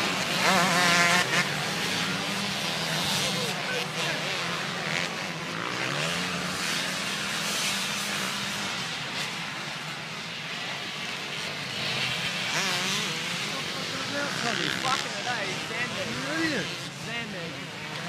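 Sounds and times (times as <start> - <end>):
motorcycle engines revving: 0.0 - 18.0.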